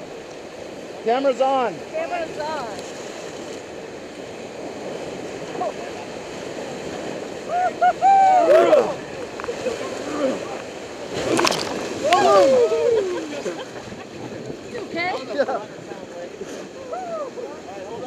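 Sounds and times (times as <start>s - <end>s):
wave splashing: 0.0s - 18.0s
whitewater rapids rushing: 0.0s - 18.0s.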